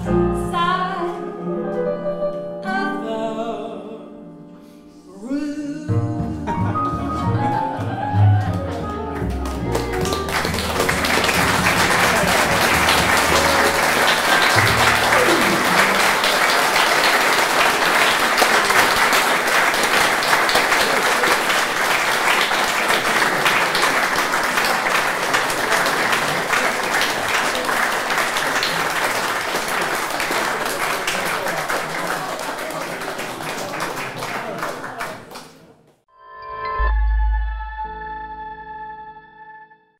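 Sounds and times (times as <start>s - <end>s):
audience applauding: 6.8s - 35.7s.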